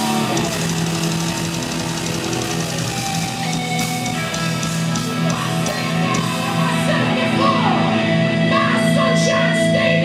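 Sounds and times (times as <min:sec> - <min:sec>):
drums and cymbals: 0:00.0 - 0:06.9
distorted electric guitars: 0:00.0 - 0:10.0.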